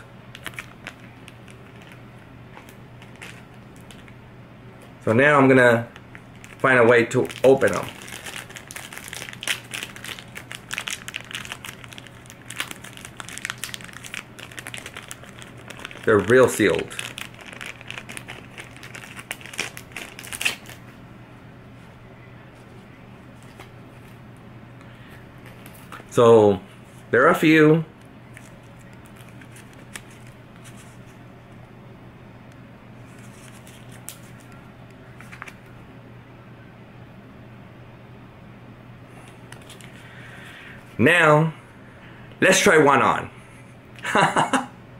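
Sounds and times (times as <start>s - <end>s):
faint steady hum: 0.0s - 44.9s
plastic packet crinkling: 0.3s - 4.2s, 5.8s - 20.9s, 28.3s - 31.2s, 33.0s - 34.6s, 39.5s - 40.0s.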